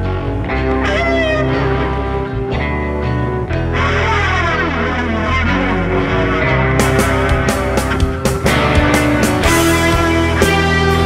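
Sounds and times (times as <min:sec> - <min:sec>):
rock band with electric guitars: 0:00.0 - 0:11.0.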